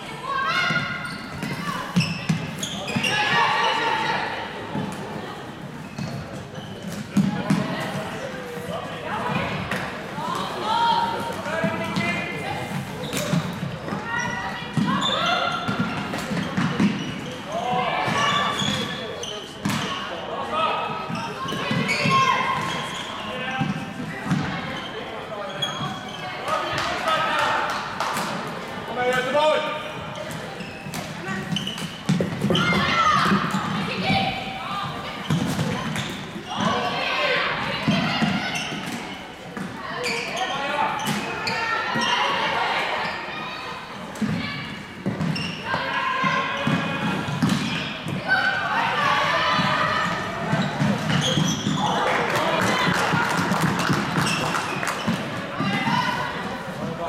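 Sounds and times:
voices echoing in hall: 0:00.0 - 0:57.0.

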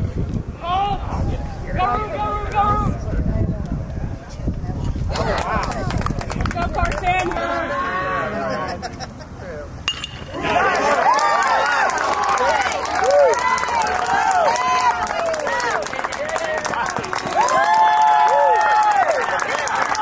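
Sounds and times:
metal bat ping: 0:09.9 - 0:10.4
crowd yelling and cheering: 0:10.2 - 0:20.0.

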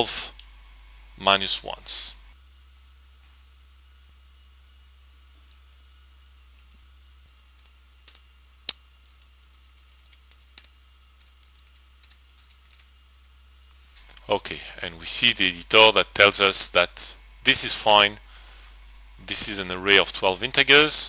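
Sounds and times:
low steady hum: 0:00.0 - 0:21.0.

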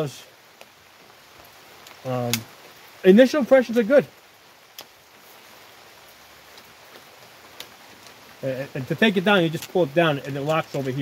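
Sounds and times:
light rain falling: 0:00.0 - 0:11.0.

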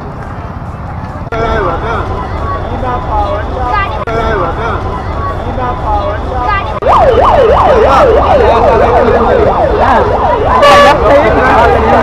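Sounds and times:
street traffic: 0:00.0 - 0:12.0
electronic siren yelping: 0:06.8 - 0:12.0.

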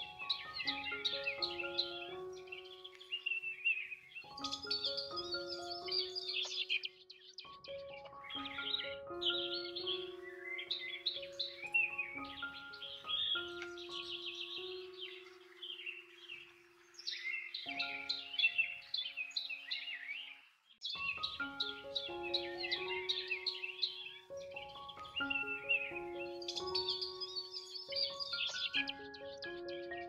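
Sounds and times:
birdsong chirping: 0:00.0 - 0:30.0
calm background music: 0:00.0 - 0:30.0.

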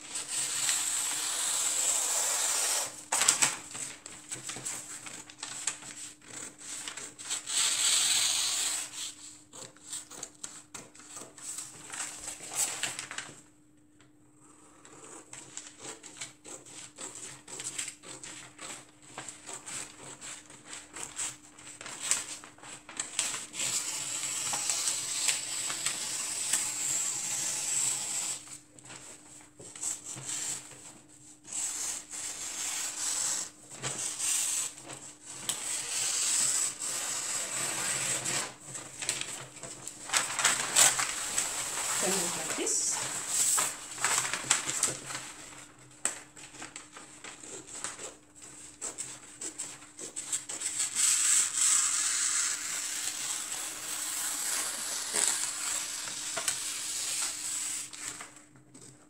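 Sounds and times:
scissors cutting paper: 0:00.1 - 0:13.2, 0:14.4 - 0:28.6, 0:29.6 - 0:58.2
paper rustling and crunching: 0:03.1 - 0:07.7, 0:09.9 - 0:13.5, 0:17.1 - 0:26.0, 0:36.9 - 0:59.0.

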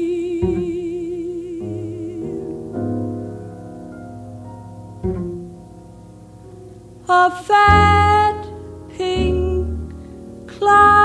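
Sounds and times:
plucked double bass: 0:00.0 - 0:10.0
soft piano chords: 0:00.0 - 0:11.0.

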